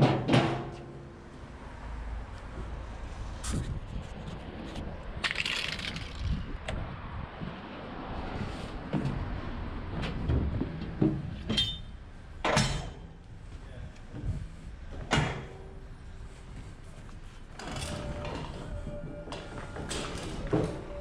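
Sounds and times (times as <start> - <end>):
metal tail lift clanks and rattles: 0.0 - 1.2, 9.9 - 13.2.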